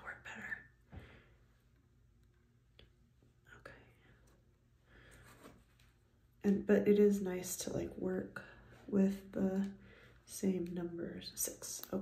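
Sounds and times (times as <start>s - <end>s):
faint whisper: 0.0s - 0.8s, 3.4s - 4.4s.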